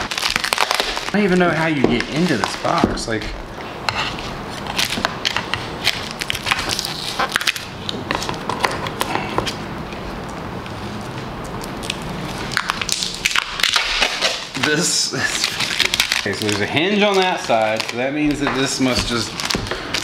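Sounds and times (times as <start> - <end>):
paper crackling and rustling: 0.0 - 3.2, 4.2 - 9.1, 10.9 - 20.0.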